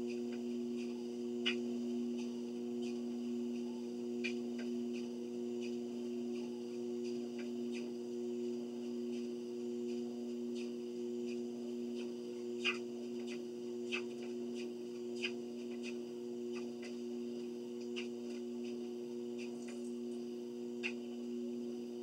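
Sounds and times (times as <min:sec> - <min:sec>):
faint light ticks: 0:00.0 - 0:01.6, 0:02.2 - 0:07.9, 0:08.5 - 0:21.3
treadmill electric hum: 0:00.0 - 0:22.0.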